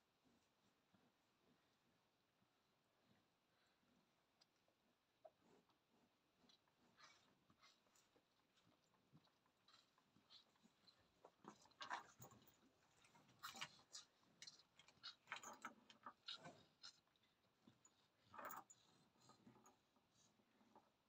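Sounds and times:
calf sucking and smacking: 0:03.9 - 0:21.0.

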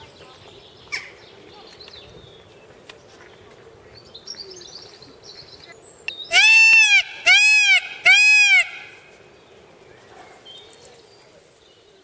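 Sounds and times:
peacock calls: 0:06.3 - 0:09.1.

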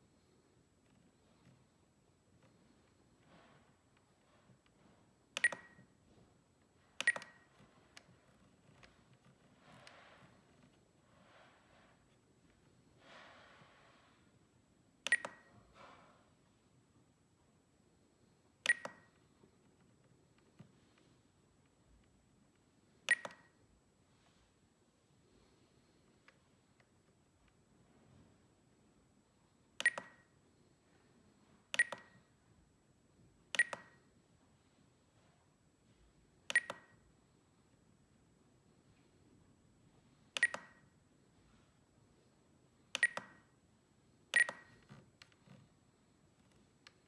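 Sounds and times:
transmitter beeping: 0:05.4 - 0:05.9, 0:31.8 - 0:32.3, 0:33.6 - 0:34.0, 0:36.5 - 0:37.0, 0:43.0 - 0:43.5, 0:44.4 - 0:44.9.

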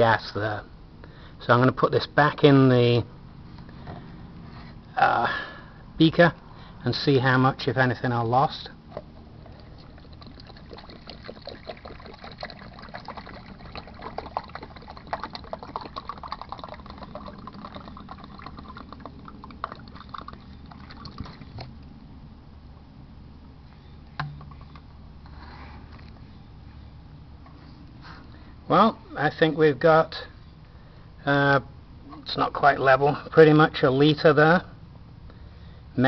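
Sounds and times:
water pouring into plastic jug: 0:09.1 - 0:21.7.

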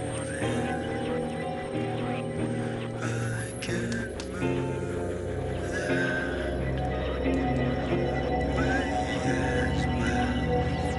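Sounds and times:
droning bass: 0:00.0 - 0:10.9
sustained synth tones: 0:00.0 - 0:10.9.

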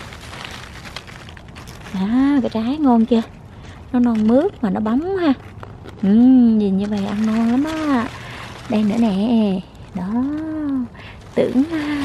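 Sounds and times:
faint crackles: 0:00.0 - 0:12.0
rustling of leaves being handled: 0:00.0 - 0:12.0.

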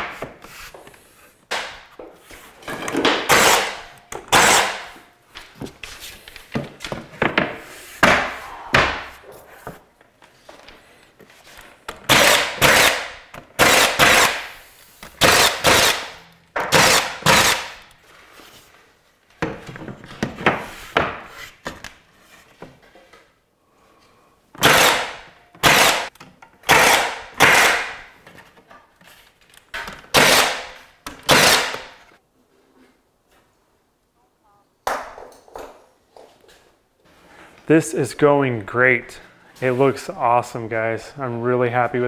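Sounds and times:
nail gun shots into wood: 0:03.1 - 0:04.9, 0:12.1 - 0:14.6, 0:15.2 - 0:17.8, 0:24.6 - 0:26.1, 0:26.7 - 0:28.0, 0:30.1 - 0:32.0.

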